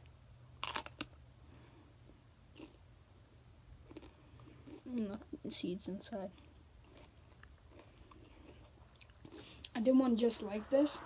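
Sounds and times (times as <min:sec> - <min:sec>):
teeth crunching pepper: 0:00.6 - 0:01.2, 0:03.8 - 0:05.0, 0:06.4 - 0:09.7
faint chewing: 0:02.0 - 0:02.8, 0:03.8 - 0:05.5, 0:06.1 - 0:11.0.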